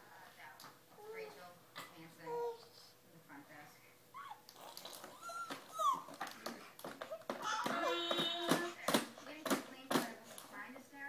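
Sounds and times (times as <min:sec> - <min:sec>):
baby squealing and whining: 0:04.1 - 0:06.3, 0:07.0 - 0:08.8.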